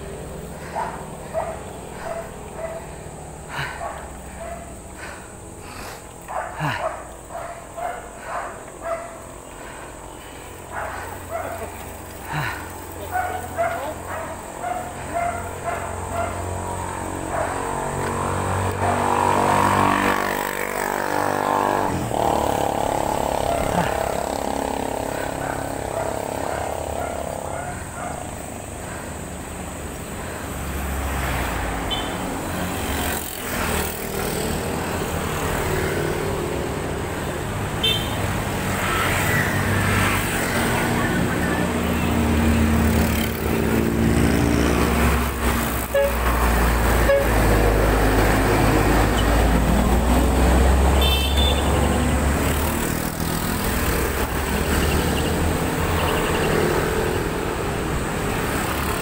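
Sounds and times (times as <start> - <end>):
motor vehicle engine passing: 0.0 - 59.0.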